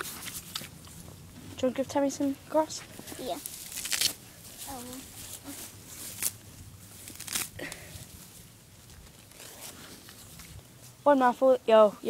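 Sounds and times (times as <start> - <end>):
grass ripping: 3.4 - 10.6.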